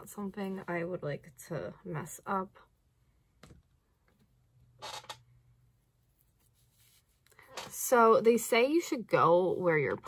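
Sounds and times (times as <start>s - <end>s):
soft rustle of hair: 5.8s - 10.0s.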